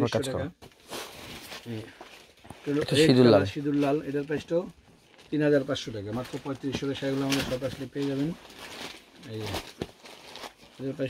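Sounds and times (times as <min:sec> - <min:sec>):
fabric rustling: 0:00.6 - 0:11.0
man speaking: 0:02.7 - 0:04.7, 0:05.3 - 0:08.4, 0:10.8 - 0:11.0.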